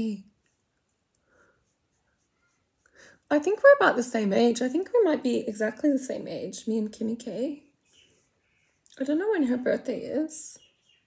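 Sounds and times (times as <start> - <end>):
makeup brush strokes on skin: 0.0 - 5.4.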